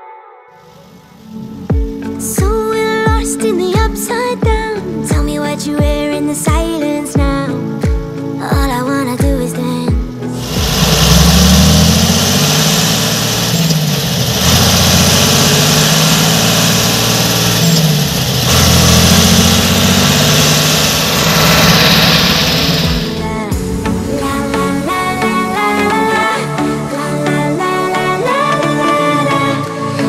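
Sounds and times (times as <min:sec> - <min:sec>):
tractor diesel engine revving: 0:10.4 - 0:26.6.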